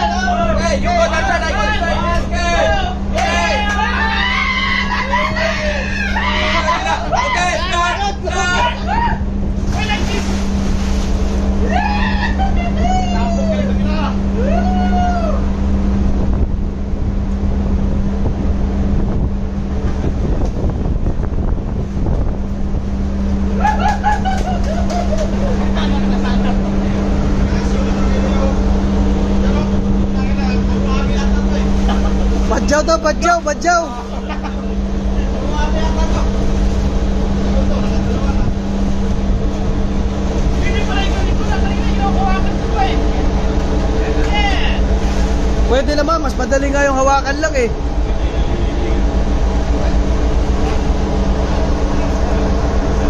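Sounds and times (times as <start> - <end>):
voices calling out: 0.0 - 10.7
ship engines droning: 0.0 - 53.0
water splashing in pool: 9.6 - 11.6.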